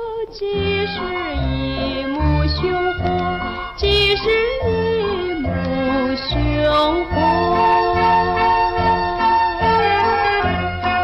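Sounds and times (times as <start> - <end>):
woman singing a ballad: 0.0 - 10.4
instrumental accompaniment with bass: 0.0 - 11.0.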